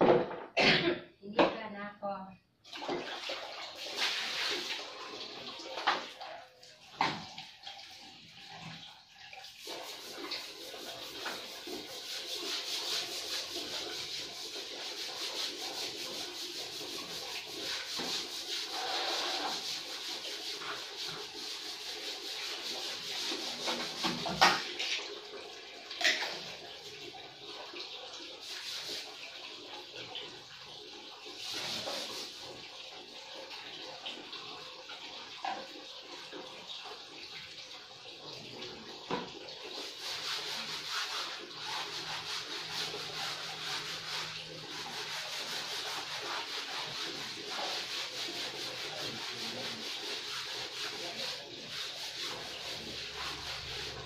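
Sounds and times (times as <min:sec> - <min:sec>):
objects knocking and clattering: 0:00.0 - 0:01.6, 0:23.7 - 0:25.0
water splashing on tiled floor: 0:02.6 - 0:54.0.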